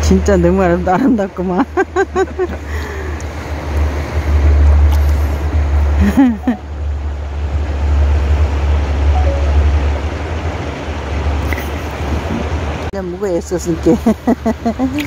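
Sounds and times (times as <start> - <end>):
person laughing: 1.8 - 3.1, 6.0 - 6.6
wind buffeting microphone: 9.6 - 12.9.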